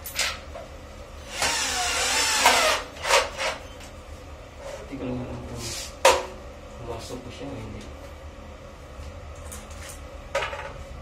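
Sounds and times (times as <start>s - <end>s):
cordless drill running: 1.3s - 3.1s.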